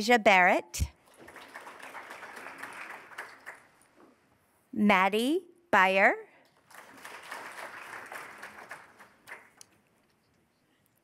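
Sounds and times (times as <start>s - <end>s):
faint audience applause: 1.0s - 3.8s, 6.6s - 9.7s.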